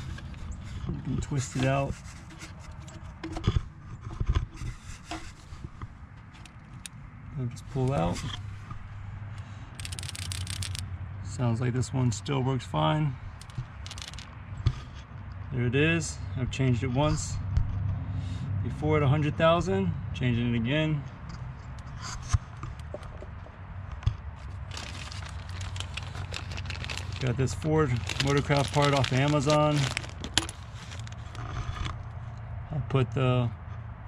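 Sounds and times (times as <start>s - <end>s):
plastic bag crinkling: 9.8s - 10.8s, 13.4s - 14.3s, 24.4s - 31.4s
valve rattling when shaken: 9.8s - 10.8s, 13.4s - 14.3s.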